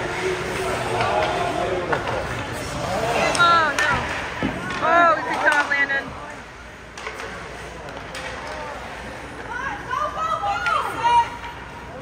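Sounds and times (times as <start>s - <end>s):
skates and play on ice: 0.0s - 12.0s.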